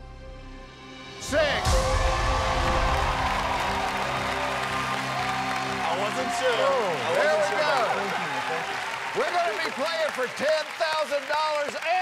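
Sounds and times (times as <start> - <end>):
game show music cue: 0.0 - 9.4
studio audience applause: 1.2 - 12.0.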